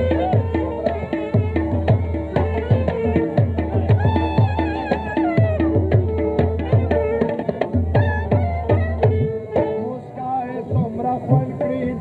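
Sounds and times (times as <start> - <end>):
folk music: 0.0 - 12.0
tabla drumming: 0.0 - 12.0.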